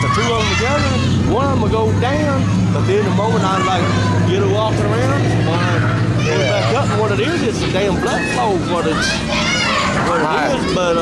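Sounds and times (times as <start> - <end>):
man talking: 0.0 - 9.0, 10.0 - 11.0
steady low hum: 0.0 - 11.0.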